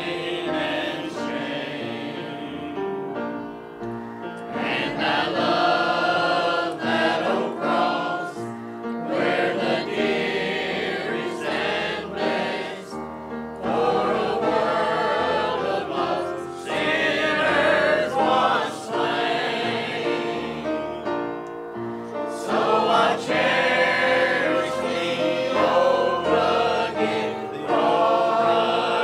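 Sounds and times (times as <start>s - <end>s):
mixed choir singing a hymn: 0.0s - 3.3s, 4.2s - 29.0s.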